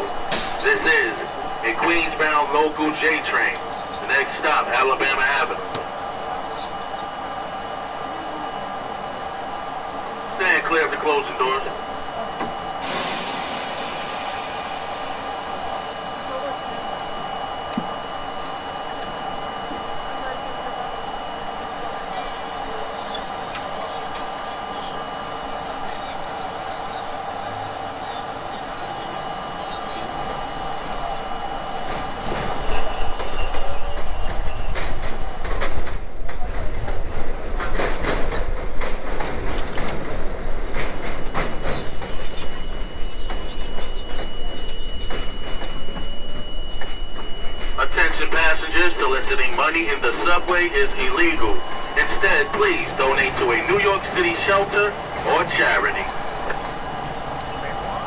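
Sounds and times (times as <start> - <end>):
subway car electrical hum: 0.0 - 58.0
train wheels clattering on track: 32.0 - 46.1.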